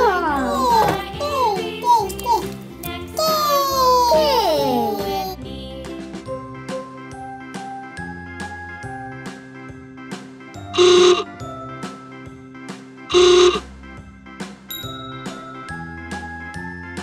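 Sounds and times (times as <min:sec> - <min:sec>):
upbeat children's music: 0:00.0 - 0:17.0.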